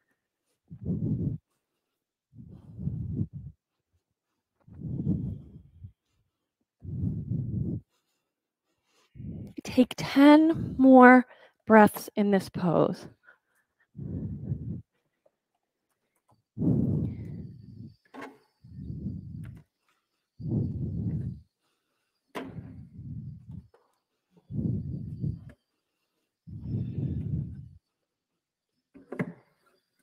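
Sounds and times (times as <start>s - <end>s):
person breathing slowly: 0.0s - 9.6s, 13.1s - 15.4s, 16.0s - 28.0s.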